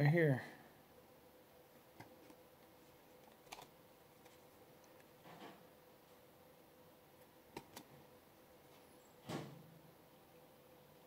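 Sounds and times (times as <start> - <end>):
cards being shuffled: 3.2 - 4.5.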